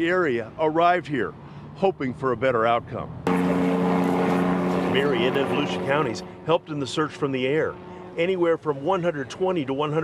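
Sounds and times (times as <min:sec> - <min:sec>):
helicopter flying overhead: 0:03.3 - 0:10.0.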